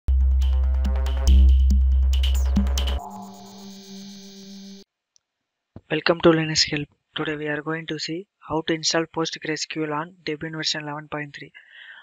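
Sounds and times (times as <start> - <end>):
low synth tone: 0.1 - 4.9
narrator speaking: 5.8 - 11.6.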